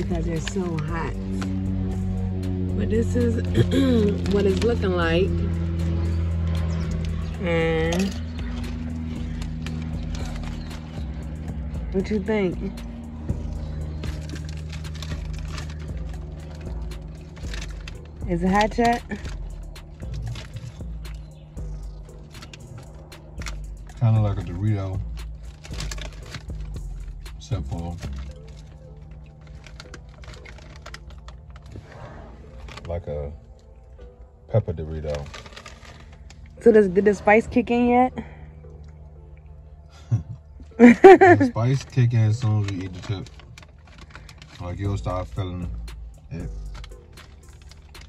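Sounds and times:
low car cabin hum: 0.0s - 48.0s
foil bag crackling: 3.4s - 24.0s, 25.0s - 33.0s, 34.9s - 36.7s, 41.0s - 48.0s
chewing crunchy chip: 5.5s - 11.9s, 12.7s - 34.1s, 34.8s - 36.6s, 41.6s - 48.0s.

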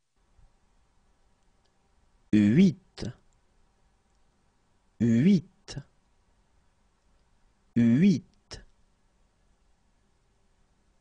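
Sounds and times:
person speaking: 2.3s - 3.3s, 5.0s - 6.0s, 7.8s - 8.8s.

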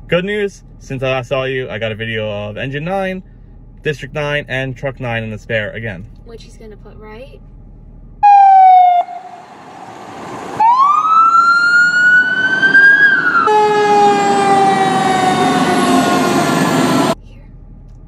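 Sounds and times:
truck engine and road noise: 0.0s - 18.0s
fire truck siren falling: 8.2s - 17.2s
siren wailing: 8.2s - 17.2s.

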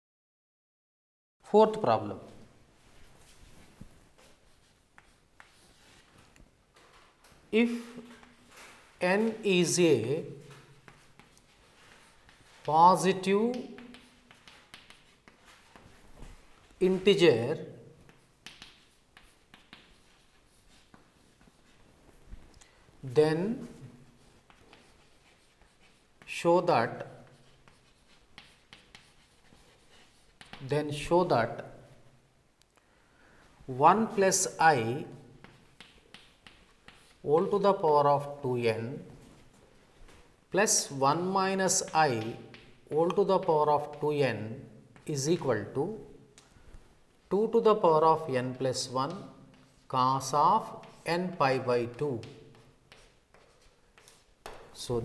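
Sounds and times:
chalk scratching on chalkboard: 4.1s - 6.2s, 10.3s - 17.2s, 18.0s - 22.2s, 23.6s - 32.0s, 34.1s - 39.6s, 40.7s - 44.3s, 47.6s - 54.7s
man speaking: 7.5s - 8.2s, 9.0s - 10.5s, 12.6s - 13.8s, 16.8s - 17.8s, 23.0s - 24.0s, 30.6s - 31.7s, 33.7s - 35.2s, 37.2s - 39.1s, 40.5s - 46.2s, 47.3s - 52.4s, 54.8s - 55.0s.

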